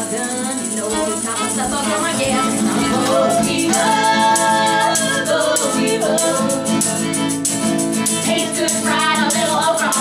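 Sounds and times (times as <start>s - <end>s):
women singing in harmony: 0.0s - 7.0s, 8.2s - 10.0s
strummed acoustic guitar: 0.0s - 10.0s
tambourine jingling: 0.0s - 10.0s.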